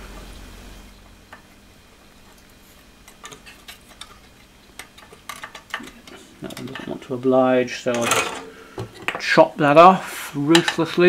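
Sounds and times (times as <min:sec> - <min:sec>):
faint metal clicks and ticks: 0:02.2 - 0:07.2.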